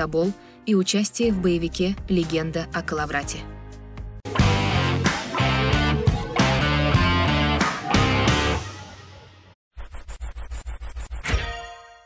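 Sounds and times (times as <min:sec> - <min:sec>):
stuttering scratch transition effect: 0:09.8 - 0:11.3.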